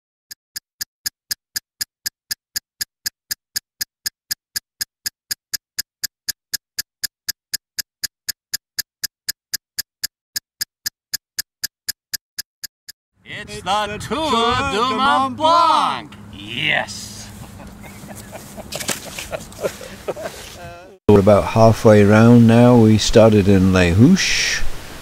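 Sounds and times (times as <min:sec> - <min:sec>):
steady electronic ticking: 0:00.5 - 0:13.0.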